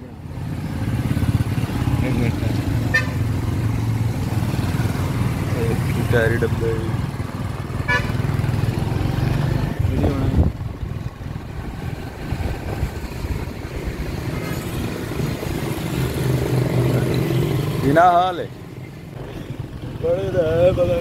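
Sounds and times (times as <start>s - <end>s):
traffic and road noise: 0.0s - 21.0s
small motorcycle engine running: 0.2s - 18.4s.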